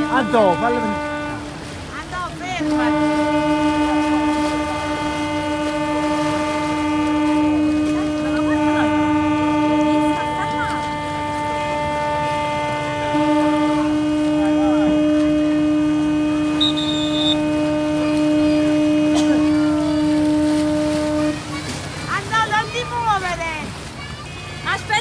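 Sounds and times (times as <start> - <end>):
ship horns blasting: 0.0 - 23.9.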